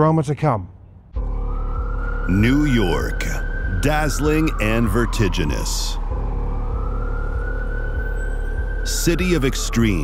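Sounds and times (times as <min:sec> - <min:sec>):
siren wailing: 0:01.2 - 0:10.0.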